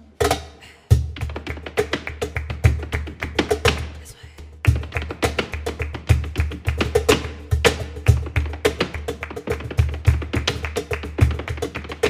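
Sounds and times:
rhythmic hand-clapping: 0:01.0 - 0:12.0
dance shoes striking stage: 0:04.7 - 0:12.0.

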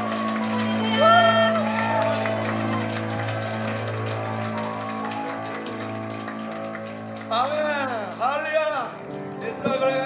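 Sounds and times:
scattered clapping: 0:00.0 - 0:10.0.

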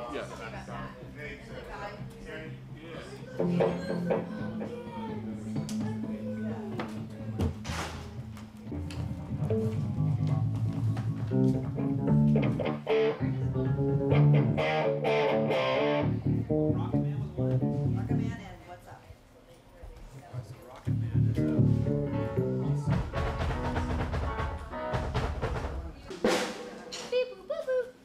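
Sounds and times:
bass guitar: 0:03.0 - 0:18.5, 0:20.9 - 0:26.0
electric guitar: 0:03.3 - 0:18.4, 0:20.9 - 0:25.9.

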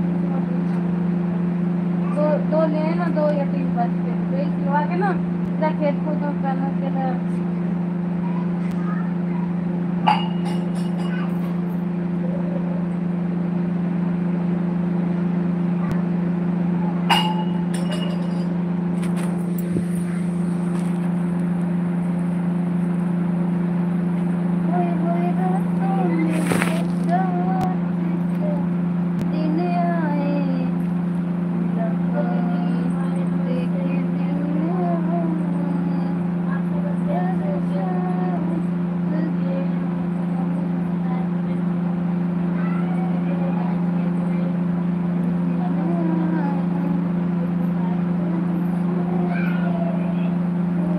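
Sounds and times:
faint voices: 0:00.0 - 0:13.8, 0:24.5 - 0:50.9
low mechanical hum: 0:00.0 - 0:50.9.

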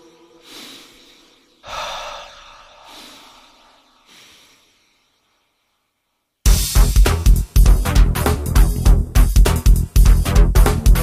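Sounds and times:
person breathing heavily: 0:00.0 - 0:05.6.

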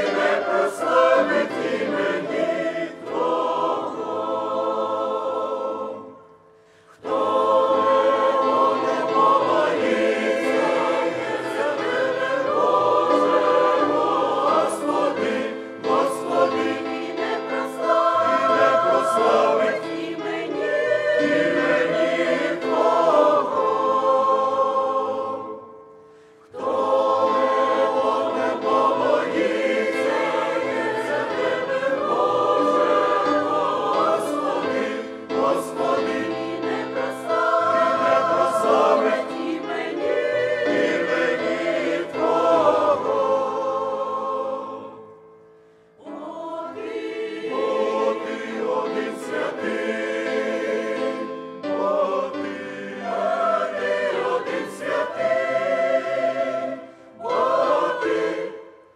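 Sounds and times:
church choir singing a hymn: 0:00.0 - 0:58.9.

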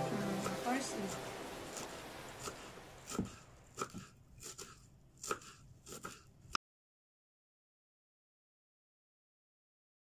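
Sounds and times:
knife chopping on wooden board: 0:01.8 - 0:06.3.

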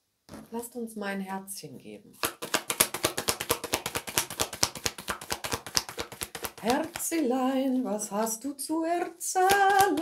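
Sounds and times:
cards being shuffled: 0:02.2 - 0:07.2.

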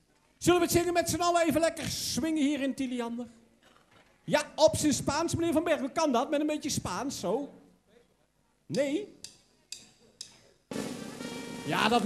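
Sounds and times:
sharp drum strikes: 0:08.7 - 0:12.0
live band playing: 0:10.7 - 0:12.0.

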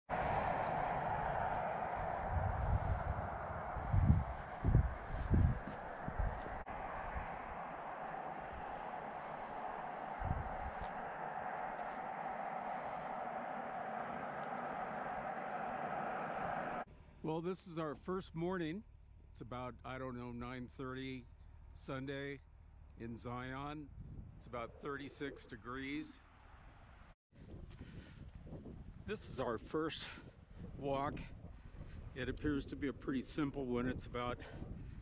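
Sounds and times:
steady rushing noise: 0:00.1 - 0:16.9
wind gusts on microphone: 0:00.1 - 0:16.9, 0:23.4 - 0:25.7, 0:27.4 - 0:35.0.

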